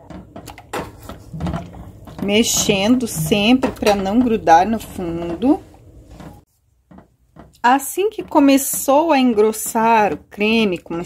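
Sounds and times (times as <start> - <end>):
spatula scraping a saucepan: 0.7 - 6.4.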